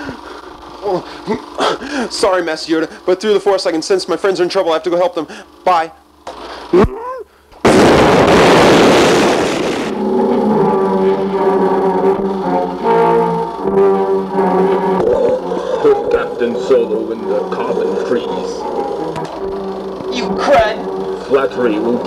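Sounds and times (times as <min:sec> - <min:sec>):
loud blast-like burst: 0:07.6 - 0:11.6
music with long held notes: 0:09.9 - 0:22.0.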